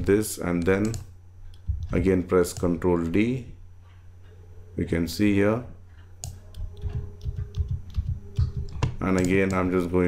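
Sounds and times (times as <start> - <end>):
keyboard and mouse clicks: 0.6 - 2.8, 6.0 - 9.7.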